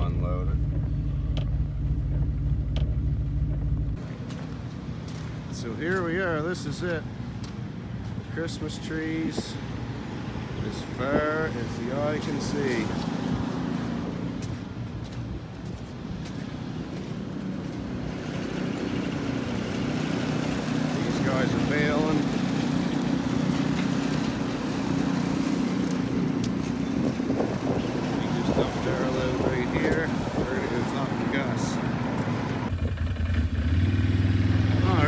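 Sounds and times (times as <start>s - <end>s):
vehicle engine running: 0.0s - 4.5s.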